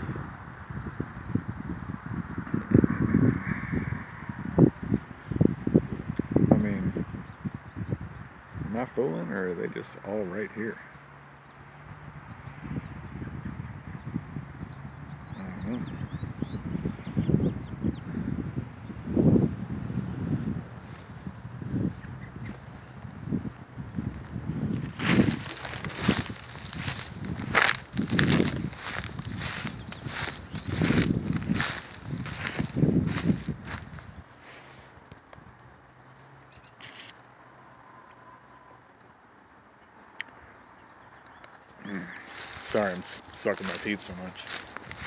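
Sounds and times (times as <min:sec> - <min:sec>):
footsteps crunching through dry grass: 0:18.6 - 0:36.4, 0:41.8 - 0:45.0.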